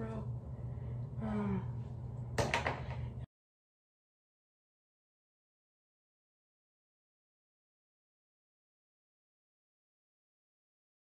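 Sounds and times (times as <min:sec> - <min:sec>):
low steady hum: 0:00.0 - 0:03.3.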